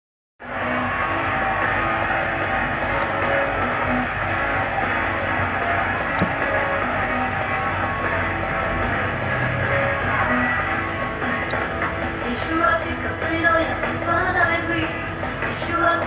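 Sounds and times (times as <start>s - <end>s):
concert music from television speaker: 0.4s - 16.0s.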